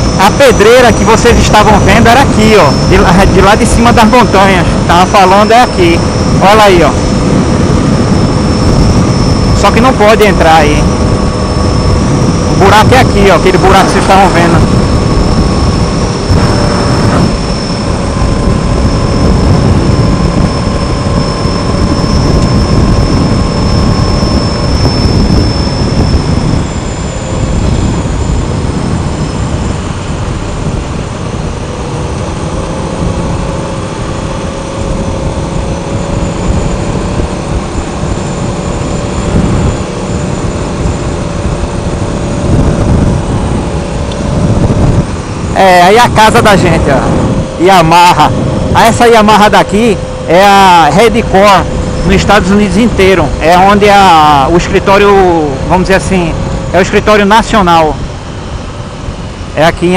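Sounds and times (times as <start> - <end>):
faint steady tones: 0.0 - 59.9
wind rushing over microphone: 0.0 - 59.9.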